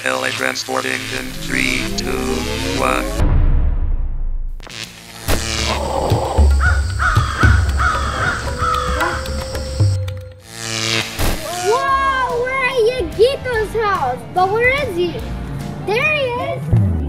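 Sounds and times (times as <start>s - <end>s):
gliding sing-song voice: 0.0s - 3.4s
music: 0.0s - 17.0s
sudden sweep: 0.8s - 4.7s
low rumble: 0.9s - 4.6s
crow-like cawing: 5.7s - 10.0s.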